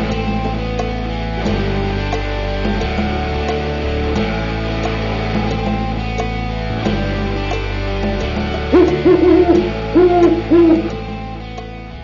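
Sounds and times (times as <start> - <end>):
guitar music: 4.2 - 11.6
owl hooting: 8.7 - 11.0.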